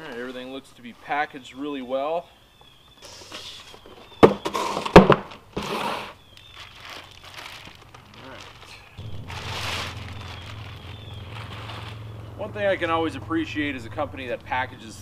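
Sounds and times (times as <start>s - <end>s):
plastic wrapping crinkling: 6.0s - 12.2s.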